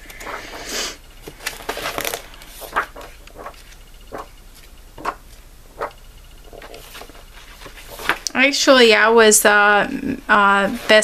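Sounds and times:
paper page turning: 0:01.2 - 0:08.2.

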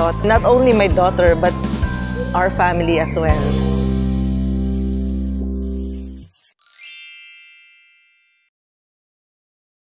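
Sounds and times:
bright chime: 0:00.4 - 0:04.1, 0:05.8 - 0:08.5.

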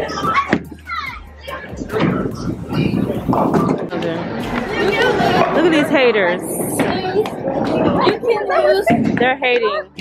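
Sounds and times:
children's excited voices and squeals: 0:00.0 - 0:03.3, 0:04.4 - 0:05.6, 0:06.8 - 0:10.0.

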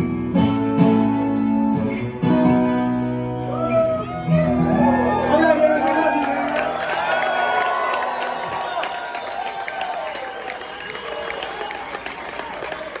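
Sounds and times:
audience applauding and cheering: 0:03.4 - 0:13.0.

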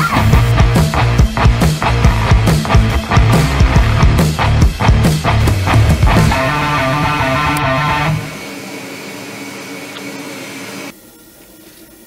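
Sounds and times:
machine whirring: 0:05.2 - 0:10.9.

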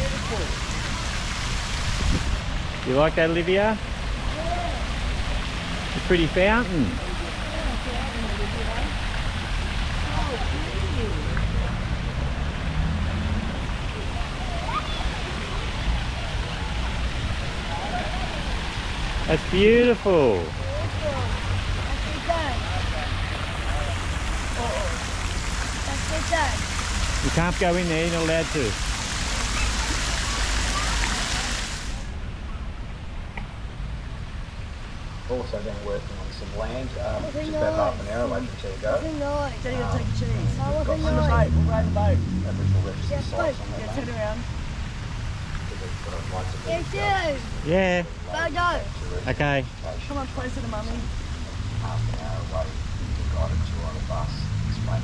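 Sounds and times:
fountain splashing into basin: 0:00.0 - 0:32.2, 0:34.0 - 0:55.0.

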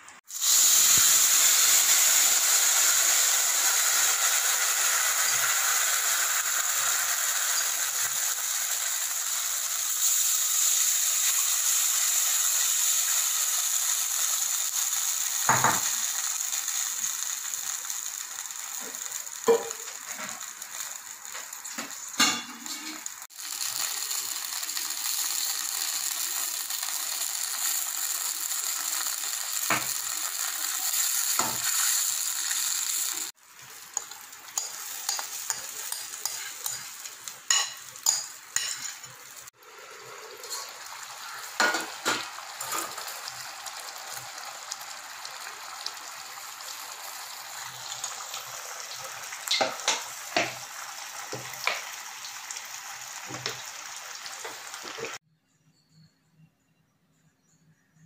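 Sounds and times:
liquid sizzling in a pan: 0:00.0 - 0:55.2.

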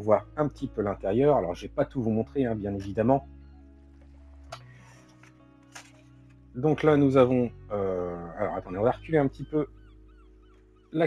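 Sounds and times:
faint background music: 0:00.0 - 0:11.0
book pages turning: 0:03.9 - 0:06.4.

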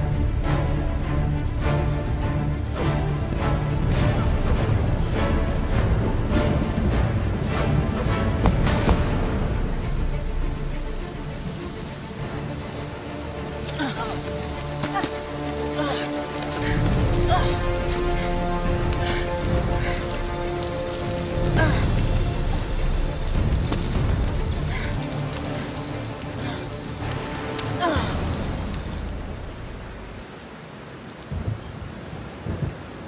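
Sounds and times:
soundtrack music with held notes: 0:00.0 - 0:30.2
steady hiss: 0:00.0 - 0:31.5.

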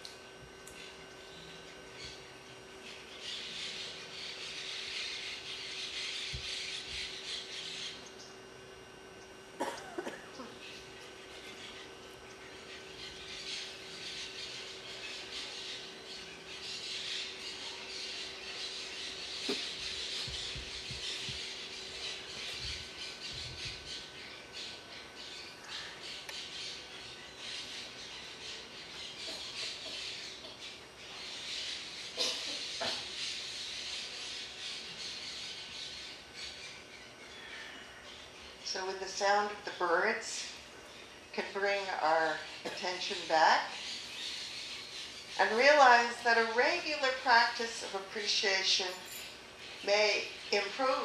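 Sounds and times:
faint steady hum: 0:00.0 - 0:51.0
birds chirping and squawking: 0:00.6 - 0:09.0, 0:10.0 - 0:51.0.

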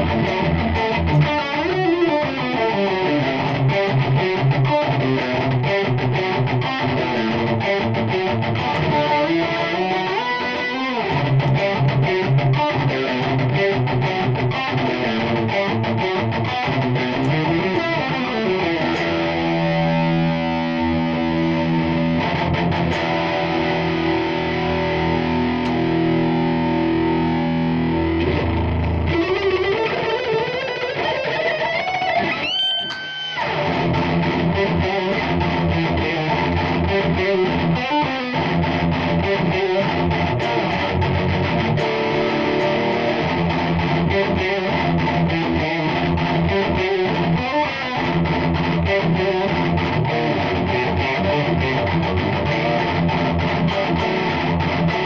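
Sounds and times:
distorted electric guitar: 0:00.0 - 0:55.0.

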